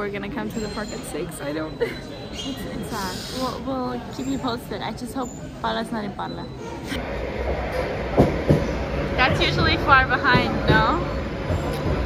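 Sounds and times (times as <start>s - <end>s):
train rumbling: 7.0s - 12.0s.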